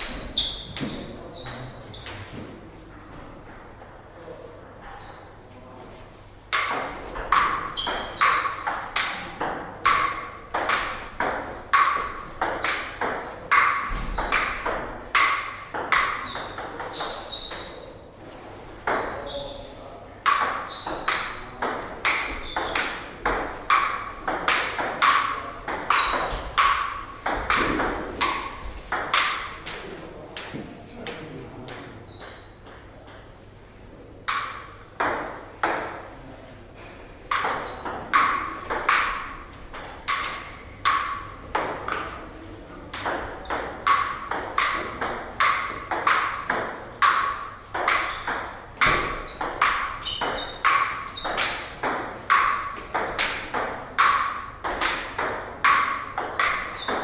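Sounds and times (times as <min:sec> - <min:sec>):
table tennis ball hits: 0:00.0 - 0:02.5, 0:06.5 - 0:18.0, 0:18.8 - 0:19.6, 0:20.2 - 0:33.3, 0:34.3 - 0:36.1, 0:36.8 - 0:57.0.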